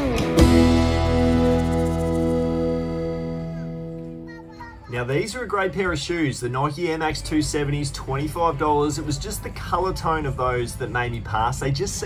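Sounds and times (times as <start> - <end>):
strummed guitar chord: 0.0 - 4.3.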